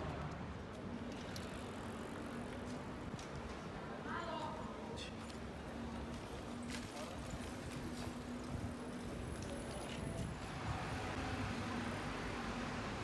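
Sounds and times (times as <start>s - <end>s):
passersby talking: 3.5s - 10.5s.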